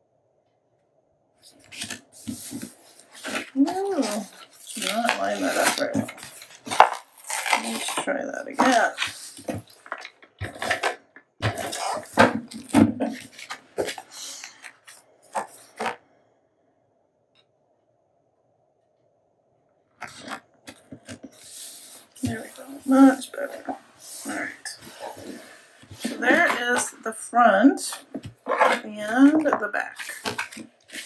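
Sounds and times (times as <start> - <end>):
cardstock rustling and scraping: 1.4 - 16.0, 20.0 - 27.0, 27.9 - 31.0.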